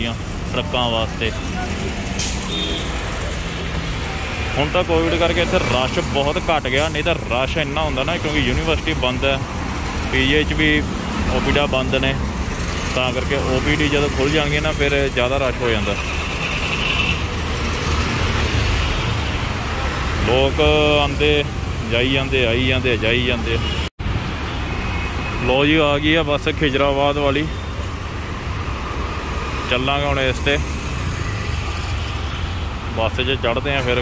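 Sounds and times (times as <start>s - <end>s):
bus passing: 0.0s - 23.0s
road traffic rumble: 0.0s - 34.0s.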